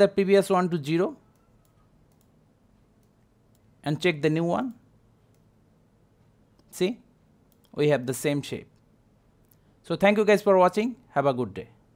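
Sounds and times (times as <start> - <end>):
computer mouse clicks: 1.3 - 2.4, 7.5 - 7.8.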